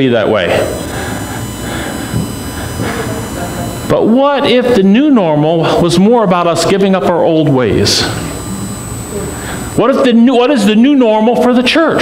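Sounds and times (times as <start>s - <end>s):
faint high tones: 0.0s - 5.8s.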